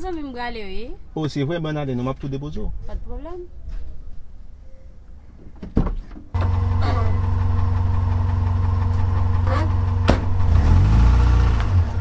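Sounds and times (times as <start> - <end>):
car engine running and revving: 6.4 - 12.0.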